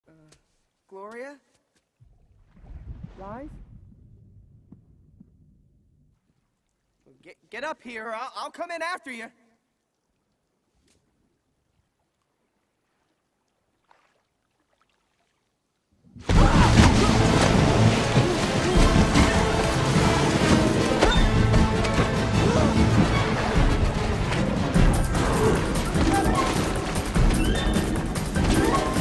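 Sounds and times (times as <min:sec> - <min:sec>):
low throbbing rumble: 0:02.8 - 0:06.1
loud film score: 0:16.2 - 0:29.0
rushing water effects: 0:16.3 - 0:29.0.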